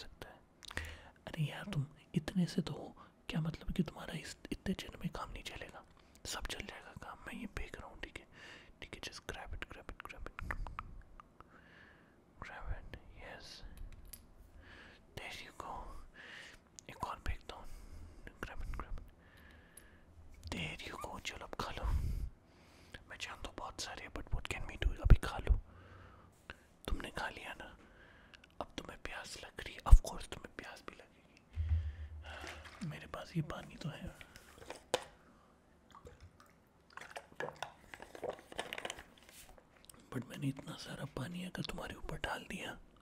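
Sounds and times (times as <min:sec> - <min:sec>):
soft whispering: 0:00.0 - 0:11.6, 0:12.4 - 0:13.9, 0:15.1 - 0:16.2, 0:16.8 - 0:19.2, 0:20.4 - 0:25.7, 0:26.4 - 0:34.7, 0:39.9 - 0:43.0
sharp knock: 0:31.6 - 0:32.3.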